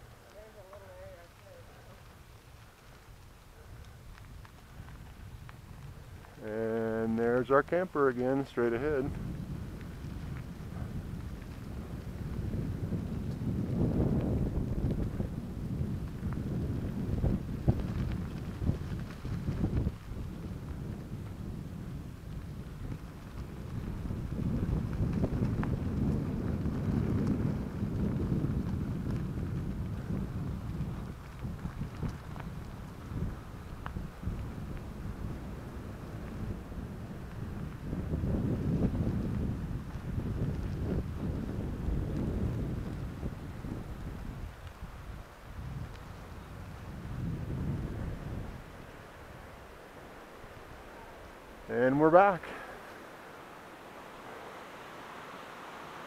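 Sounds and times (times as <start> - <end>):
bicycle tyres rolling on gravel: 0.0 - 56.0
wind buffeting microphone: 0.0 - 56.0.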